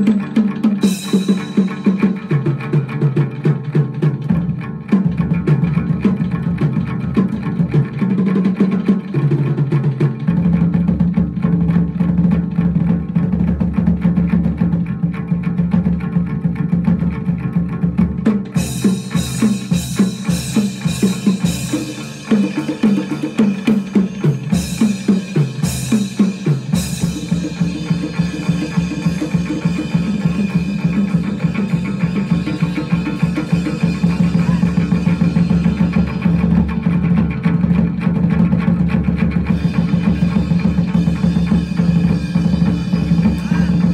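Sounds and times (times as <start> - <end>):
crisp percussion: 0.0 - 43.9
driving drum rhythm: 0.0 - 43.9
plucked lute: 0.0 - 43.9.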